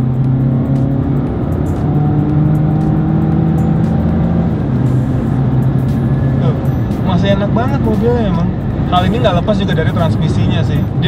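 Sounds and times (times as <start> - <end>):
car engine accelerating hard: 0.0 - 11.0.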